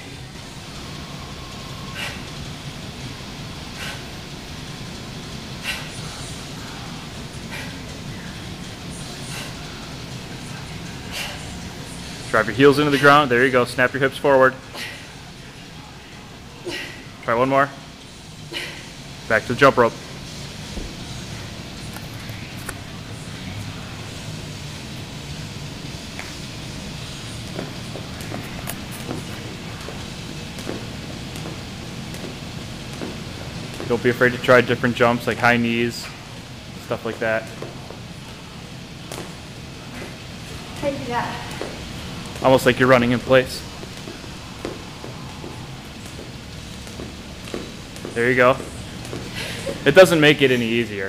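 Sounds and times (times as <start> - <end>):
steady low hum: 0.0 - 51.0
jump rope and feet tapping: 27.4 - 34.4, 41.4 - 50.0.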